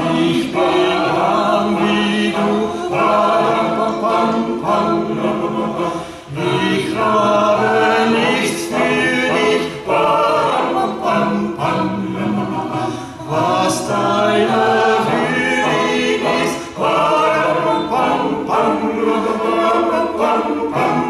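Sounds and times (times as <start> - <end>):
choir singing a cappella: 0.0 - 21.0
male and female soloists singing: 0.0 - 21.0.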